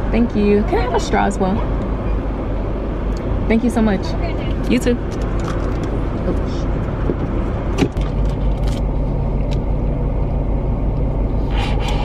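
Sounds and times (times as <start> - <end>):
car engine rumble from cabin: 0.0 - 12.0
steady low hum: 0.0 - 12.0.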